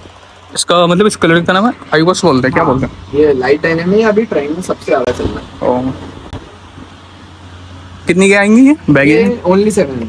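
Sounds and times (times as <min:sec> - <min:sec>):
room tone hum and hiss: 0:00.0 - 0:10.0.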